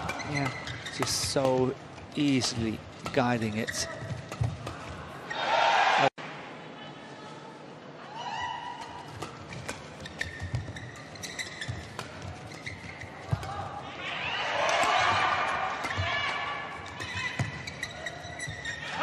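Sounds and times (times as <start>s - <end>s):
shoes squeaking on court: 0.0s - 5.0s, 9.1s - 13.8s, 14.9s - 19.0s.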